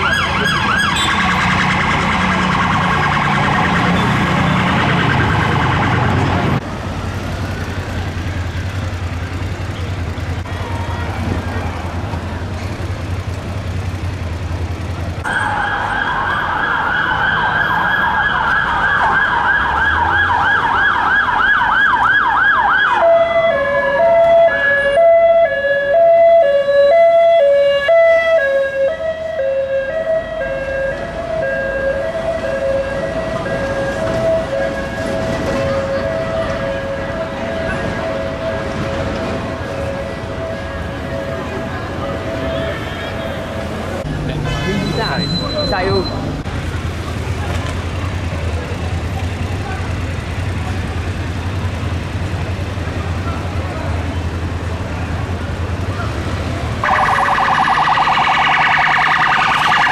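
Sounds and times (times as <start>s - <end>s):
two-tone hi-lo siren: 0.0s - 6.2s, 56.8s - 59.9s
siren fast yelp: 56.8s - 59.9s.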